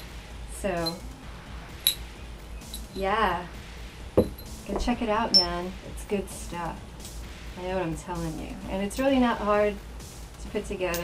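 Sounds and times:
low steady hum: 0.0 - 11.0
metal beads clicking together: 0.8 - 1.0, 1.8 - 3.1.

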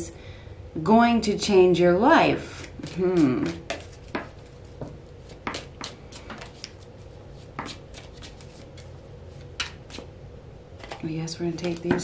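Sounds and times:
cards being shuffled: 2.6 - 10.1.

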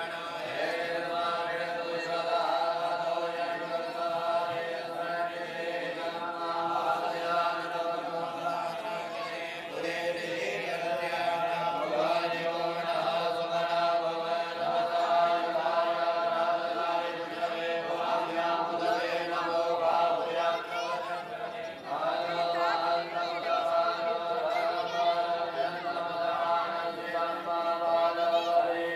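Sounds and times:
group chanting in unison: 0.0 - 28.9.

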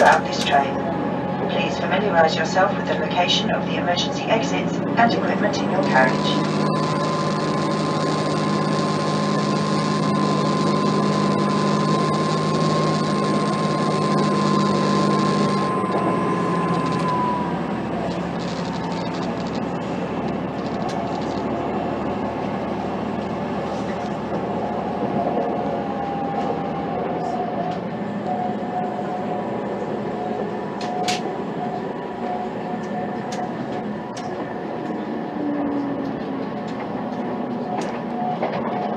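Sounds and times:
high whine: 0.0 - 36.1
diesel engine drone: 0.0 - 38.9
train wheels rumbling on track: 15.5 - 38.9.

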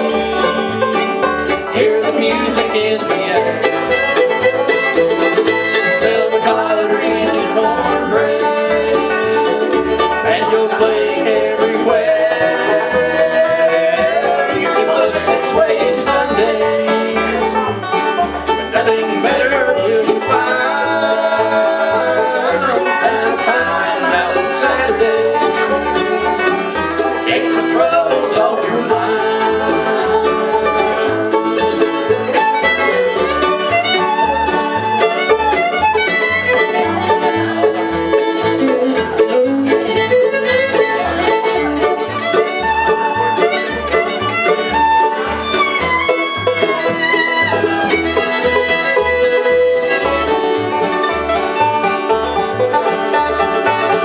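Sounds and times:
banjo: 0.0 - 54.0
fiddle: 0.0 - 54.0
mandolin: 0.0 - 54.0
strummed acoustic guitar: 0.0 - 54.0
upright bass: 0.0 - 54.0.

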